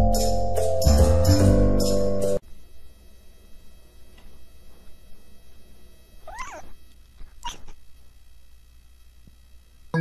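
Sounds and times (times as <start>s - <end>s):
cat calling: 6.2s - 7.8s.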